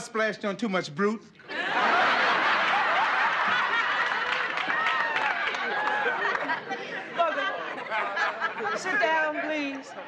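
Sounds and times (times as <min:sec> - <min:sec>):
audience laughing: 0:01.5 - 0:10.0.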